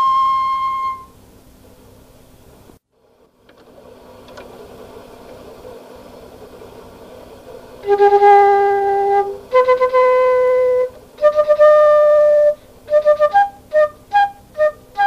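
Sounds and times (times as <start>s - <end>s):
solo flute: 0.0s - 1.2s, 7.8s - 15.0s
faint room hiss: 0.0s - 15.0s.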